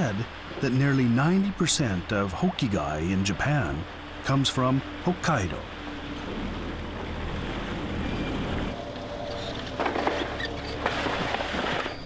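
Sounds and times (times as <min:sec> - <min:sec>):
boat engine running: 0:00.0 - 0:12.0
water washing along hull: 0:00.0 - 0:12.0.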